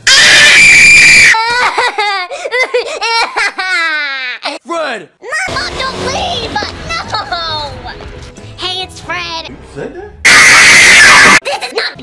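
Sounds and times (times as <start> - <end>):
person screaming and wailing: 0.1 - 1.9, 10.3 - 11.4.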